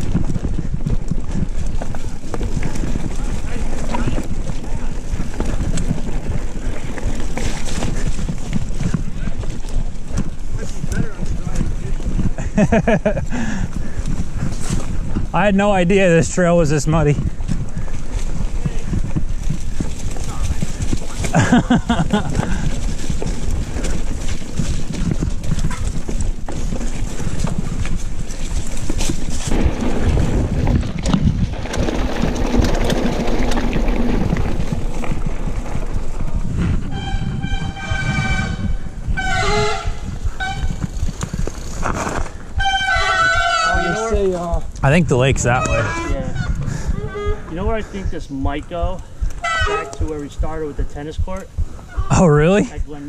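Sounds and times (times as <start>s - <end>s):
bike rattling and clicking: 0.0s - 53.0s
bike tyres rumbling on mud: 0.0s - 53.0s.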